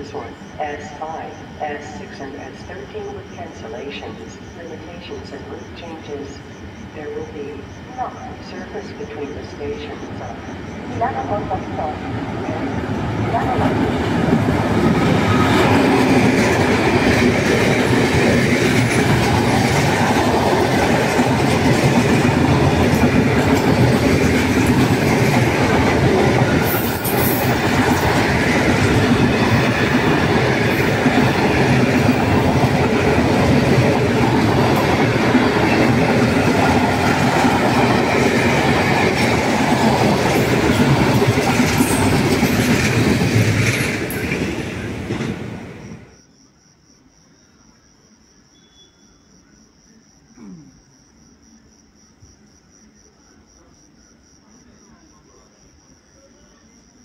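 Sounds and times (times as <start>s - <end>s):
freight train rushing past: 0.0s - 46.1s.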